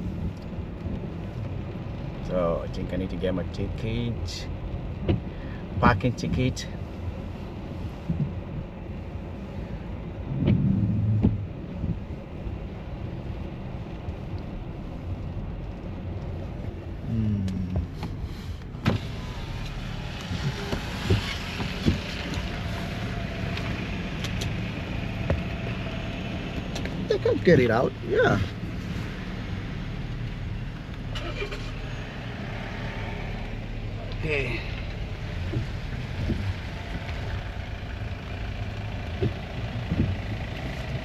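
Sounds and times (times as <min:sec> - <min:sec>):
car engine and tyres rumble: 0:00.0 - 0:41.0.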